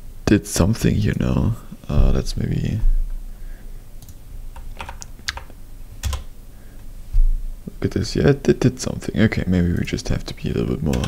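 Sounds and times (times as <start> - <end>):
computer keyboard typing: 4.0 - 6.3.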